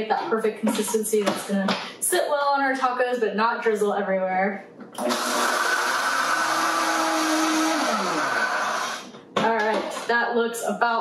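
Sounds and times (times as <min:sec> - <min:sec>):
blender motor running: 0:05.0 - 0:09.1
blender motor winding down: 0:05.0 - 0:09.1.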